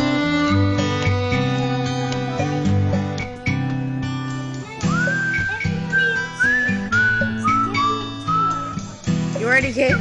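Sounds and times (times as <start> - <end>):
plucked guitar chords: 0.0 - 10.0
whistled melody: 4.8 - 9.0.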